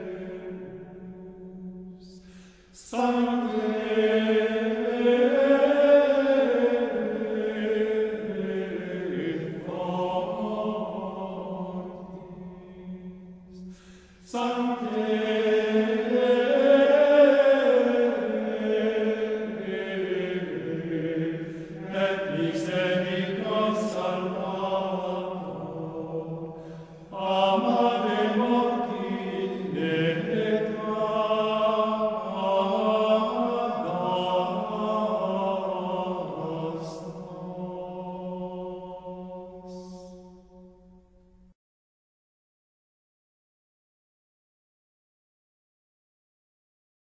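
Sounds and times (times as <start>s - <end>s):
voices singing religious chant: 0.0s - 41.0s.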